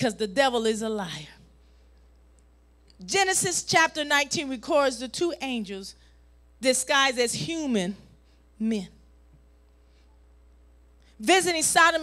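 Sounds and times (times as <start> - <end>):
woman preaching: 0.0 - 1.4, 3.0 - 5.9, 6.6 - 8.0, 8.6 - 9.0, 11.2 - 12.0
low room hum: 0.0 - 12.0.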